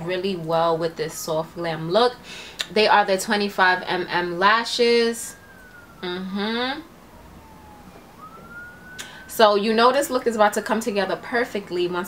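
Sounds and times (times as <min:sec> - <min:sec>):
faint siren wail: 0:00.0 - 0:12.0.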